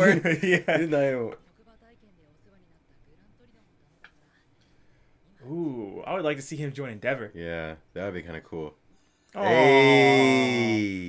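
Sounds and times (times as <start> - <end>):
man exclaiming oh: 9.4 - 11.0.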